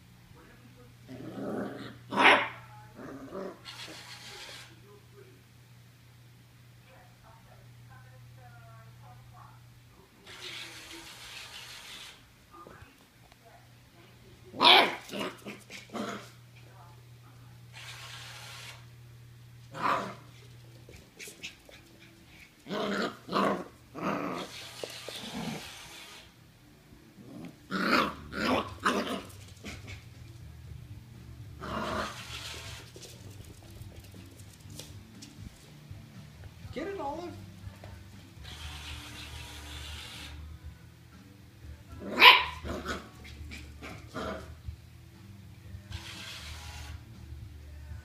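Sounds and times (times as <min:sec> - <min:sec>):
puppy barking and growling: 0:01.1 - 0:04.0, 0:14.5 - 0:16.4, 0:19.7 - 0:20.4, 0:21.4 - 0:26.1, 0:27.2 - 0:30.2, 0:31.6 - 0:33.0, 0:42.0 - 0:44.7.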